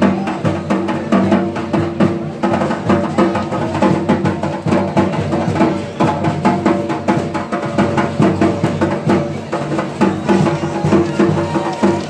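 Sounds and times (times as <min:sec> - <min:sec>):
loud drumming: 0:00.0 - 0:12.0.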